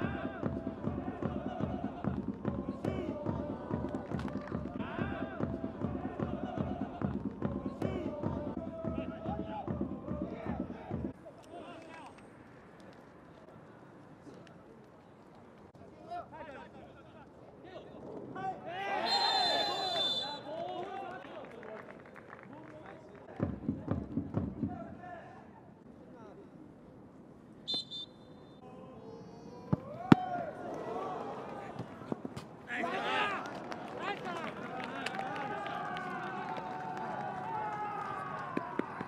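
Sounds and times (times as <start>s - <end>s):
players shouting: 0.0s - 11.0s, 18.6s - 20.6s, 29.6s - 39.0s
referee's whistle blast: 19.0s - 20.5s, 27.7s - 28.6s.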